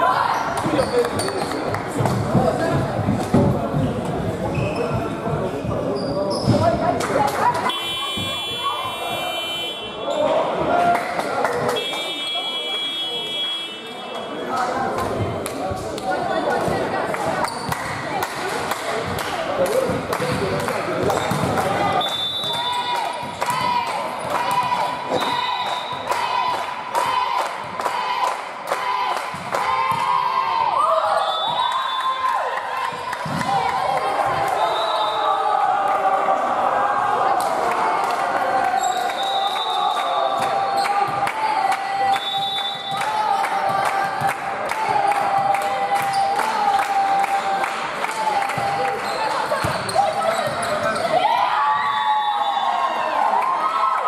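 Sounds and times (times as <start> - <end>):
voices of players: 0.0 - 54.0.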